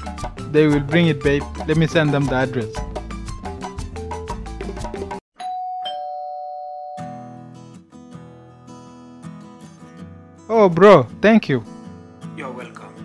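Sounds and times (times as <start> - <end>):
background music: 0.0 - 5.2, 7.1 - 13.0
two-note doorbell chime: 5.4 - 7.5.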